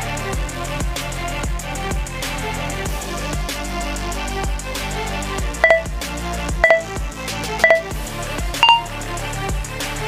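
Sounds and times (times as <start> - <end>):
background music: 0.0 - 10.0
interval timer beeping: 5.6 - 5.9, 6.6 - 6.9, 7.6 - 8.0, 8.6 - 8.9.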